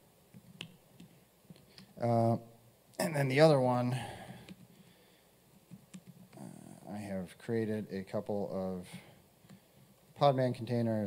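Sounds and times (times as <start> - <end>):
laptop keyboard clicks: 5.7 - 6.4.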